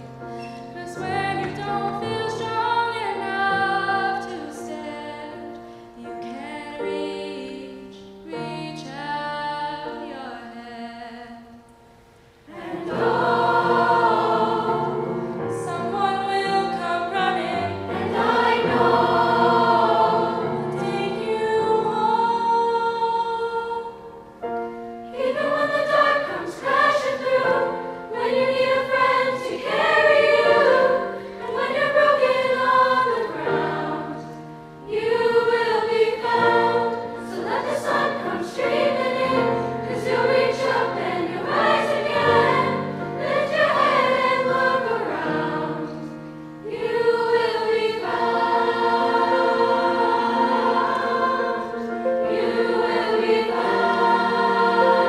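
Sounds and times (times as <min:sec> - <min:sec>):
mixed choir singing: 0:00.0 - 0:05.4, 0:12.4 - 0:24.4, 0:25.0 - 0:55.0.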